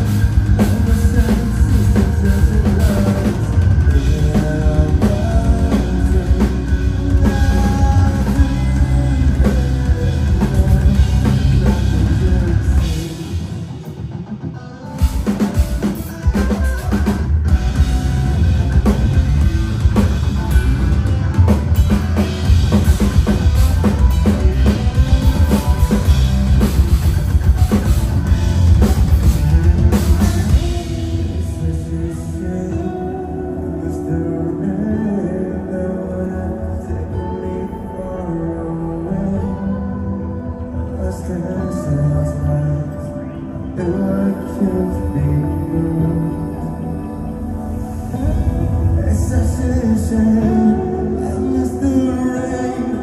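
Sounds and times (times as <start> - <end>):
drum kit: 0.0 - 33.2
bass guitar: 0.0 - 53.0
distorted electric guitars: 0.0 - 53.0.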